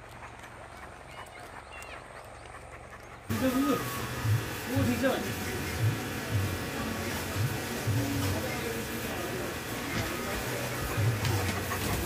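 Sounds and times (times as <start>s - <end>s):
dog panting: 0.0s - 5.9s, 9.8s - 12.0s.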